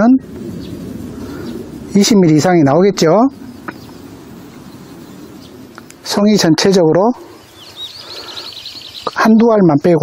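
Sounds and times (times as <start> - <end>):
man speaking: 0.0 - 0.3, 1.9 - 3.4, 6.0 - 7.3, 9.1 - 10.0
outdoor background noise: 0.0 - 10.0.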